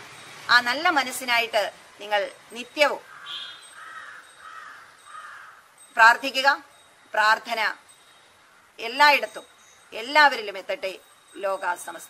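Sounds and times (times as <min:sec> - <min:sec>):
crow cawing: 0:03.0 - 0:05.7, 0:08.4 - 0:08.8.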